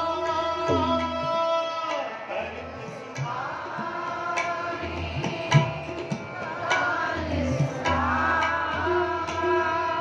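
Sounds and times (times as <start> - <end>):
tabla strokes: 0.0 - 10.0
harmonium drone: 2.3 - 10.0.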